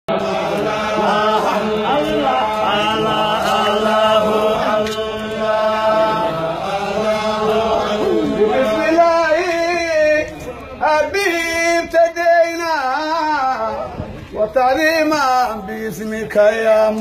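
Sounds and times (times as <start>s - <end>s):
men chanting together: 0.1s - 13.8s.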